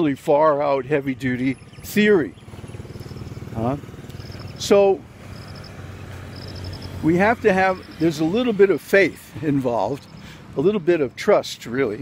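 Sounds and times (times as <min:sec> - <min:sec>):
rapid high-pitched chirps: 0:01.4 - 0:08.4.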